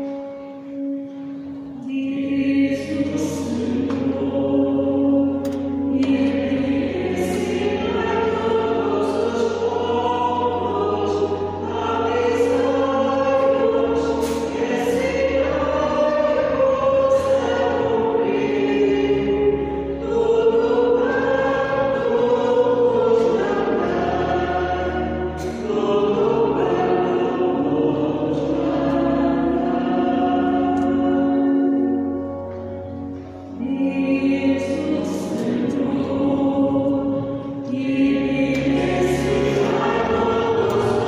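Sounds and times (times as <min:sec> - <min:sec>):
choir singing sacred song: 0:00.0 - 0:41.0.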